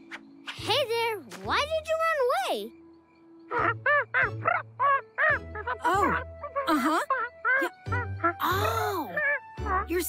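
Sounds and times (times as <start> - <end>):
cartoon penguin squawking: 5.3 - 10.0.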